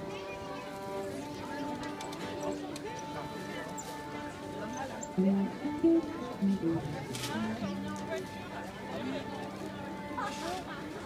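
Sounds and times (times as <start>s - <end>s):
murmur of crowd talking: 0.0s - 11.0s
violin: 0.0s - 11.0s
acoustic guitar: 5.2s - 7.8s.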